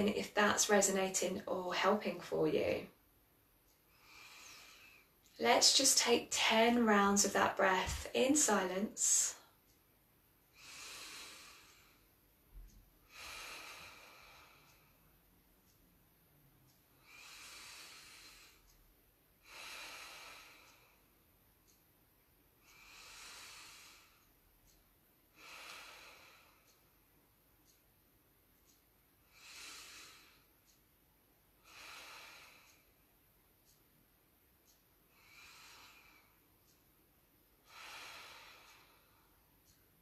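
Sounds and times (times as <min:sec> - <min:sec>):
person breathing deeply: 0:10.5 - 0:12.1, 0:13.1 - 0:15.0, 0:17.0 - 0:18.7, 0:19.4 - 0:21.1, 0:22.6 - 0:24.3, 0:25.4 - 0:26.8, 0:29.2 - 0:30.5, 0:31.6 - 0:33.0, 0:35.1 - 0:36.4, 0:37.6 - 0:39.8.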